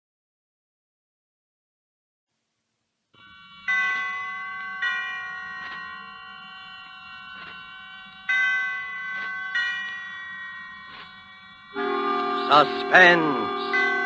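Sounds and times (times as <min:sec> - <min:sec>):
chimes ringing: 0:03.2 - 0:14.0.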